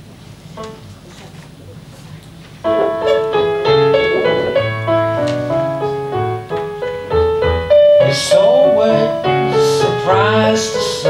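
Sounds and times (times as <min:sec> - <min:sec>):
digital piano playing: 0:02.6 - 0:11.0
man singing: 0:08.0 - 0:11.0.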